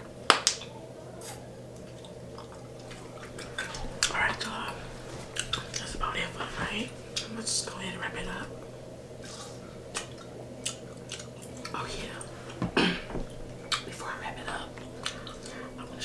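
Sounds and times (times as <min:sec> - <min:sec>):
wet chewing smacks and clicks: 0:05.3 - 0:05.9, 0:09.9 - 0:11.8, 0:13.6 - 0:13.9.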